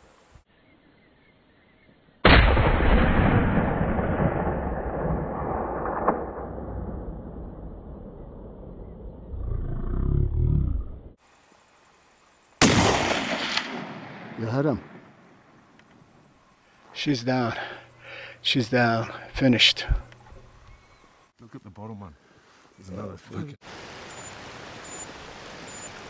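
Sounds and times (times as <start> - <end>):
rifle shots with echo: 12.6 - 15.2.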